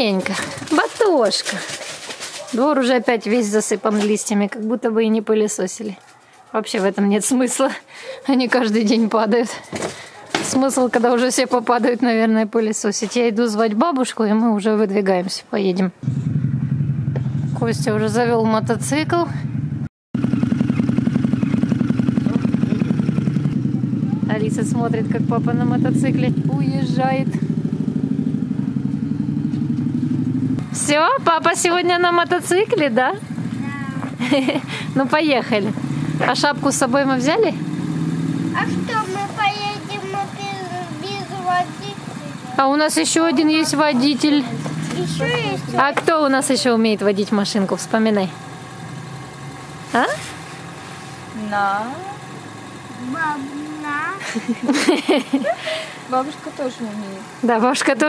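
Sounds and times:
motorcycle idling: 16.0 - 58.0.

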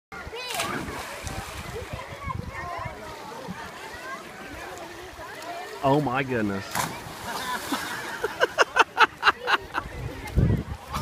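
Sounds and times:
children chattering: 0.1 - 11.0
splash into pool: 0.4 - 2.0, 6.7 - 8.2.

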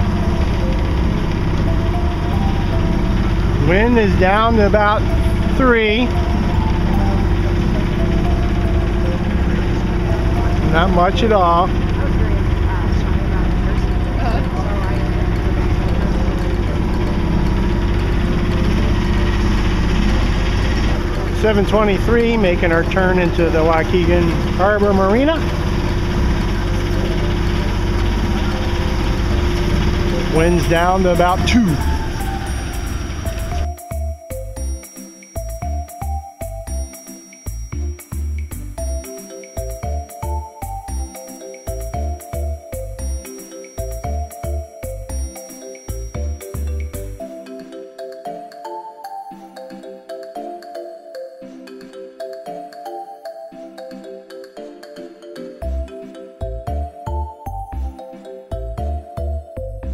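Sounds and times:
boat engine droning: 0.0 - 37.0
steady hum: 0.0 - 47.3.

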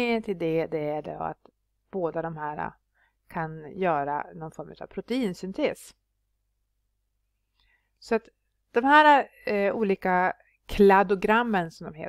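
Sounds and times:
faint breath: 2.9 - 3.3, 7.5 - 8.0.

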